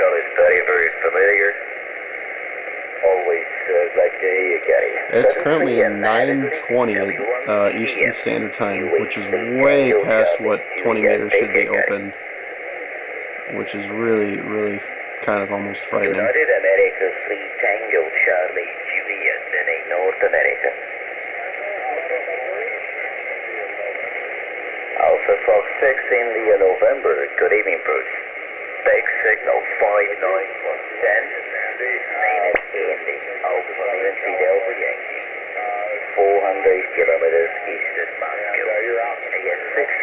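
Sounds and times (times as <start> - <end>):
distant voice over radio: 0.0 - 1.6, 3.0 - 12.2, 13.5 - 40.0
radio static hiss: 0.0 - 40.0.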